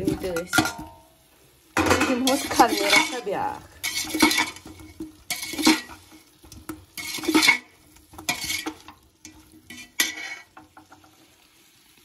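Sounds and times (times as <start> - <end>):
metal spoon scraping a pot: 1.8 - 11.2.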